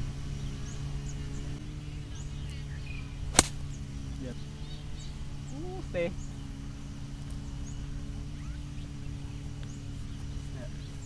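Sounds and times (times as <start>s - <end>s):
golf club hitting ball: 3.3s - 3.8s.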